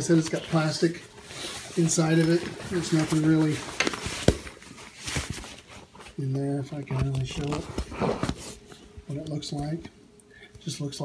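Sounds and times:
fabric cooler rustling: 0.0 - 8.7.

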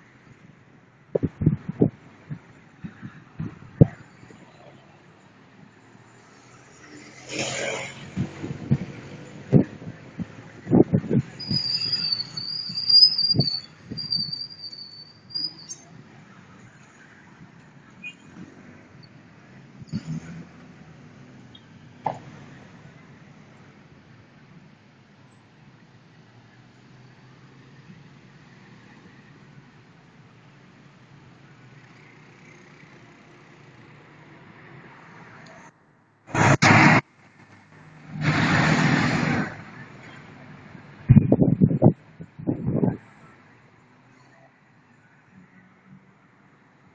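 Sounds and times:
high thin squealing tone: 11.4 - 15.9
loud noisy burst: 36.3 - 37.0
minibus passing by: 36.3 - 41.6.

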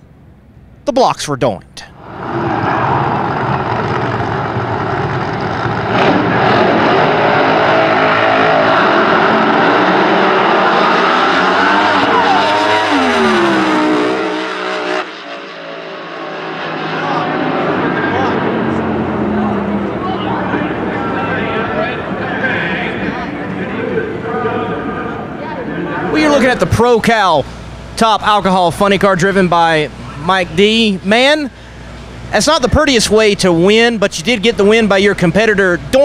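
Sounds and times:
quieter lower engine sound: 1.5 - 36.0
drag racers at full throttle: 2.0 - 36.0.

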